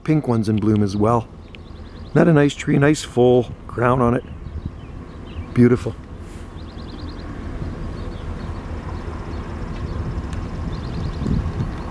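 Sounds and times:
car approaching rumble: 0.0s - 11.9s.

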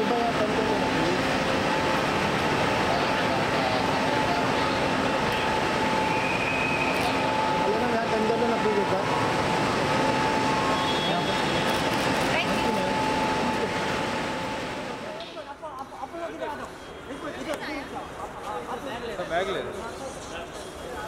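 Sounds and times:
steady hum: 0.0s - 15.4s
indistinct chatter: 0.0s - 21.0s.

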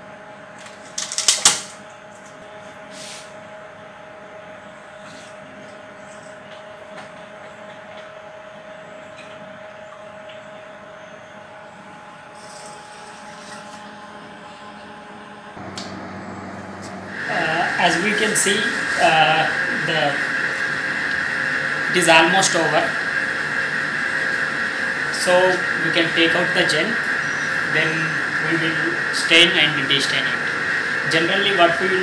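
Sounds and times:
equipment hum: 0.0s - 32.0s.

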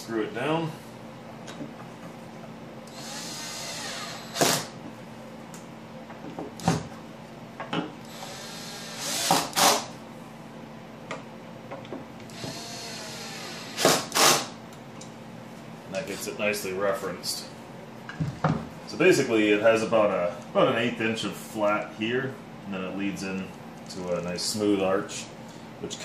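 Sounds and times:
cordless drill driving screws: 2.9s - 4.7s, 8.1s - 9.9s, 12.3s - 14.5s.

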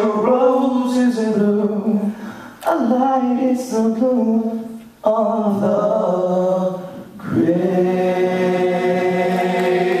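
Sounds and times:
a cappella group holding chord: 6.1s - 10.0s.

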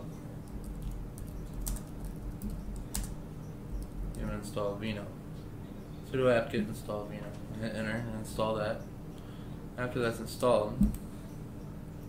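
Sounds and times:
low steady hum: 0.0s - 12.0s
keyboard keys clicking: 0.5s - 3.2s.

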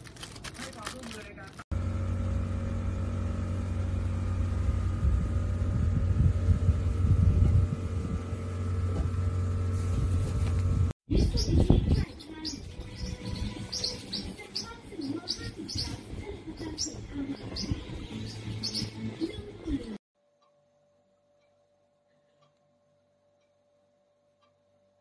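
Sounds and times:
low mechanical hum: 0.0s - 25.0s.

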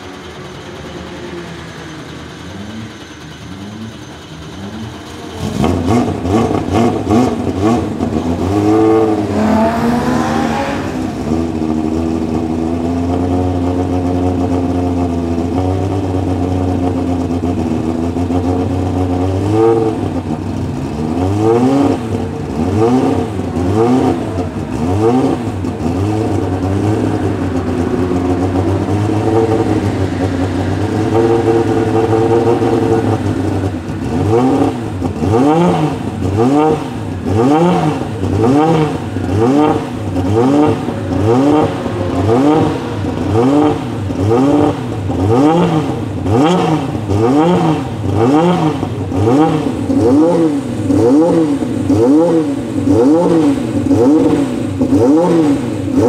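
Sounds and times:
race car engine fast idle: 0.0s - 9.2s, 11.1s - 21.3s
engine revving and throttle blips: 0.0s - 56.0s.

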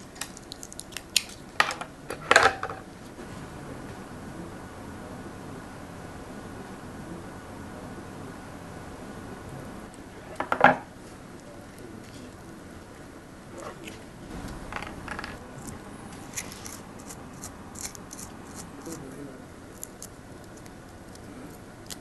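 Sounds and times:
fingers scratching cable: 13.8s - 19.1s.

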